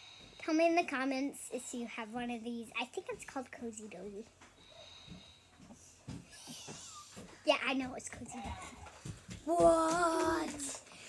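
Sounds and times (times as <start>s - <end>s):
child breathing in: 0.0s - 0.4s, 4.6s - 5.7s.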